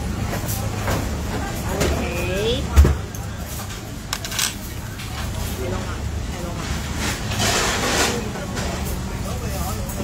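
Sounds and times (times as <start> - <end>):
faint chatter: 0.0 - 10.0.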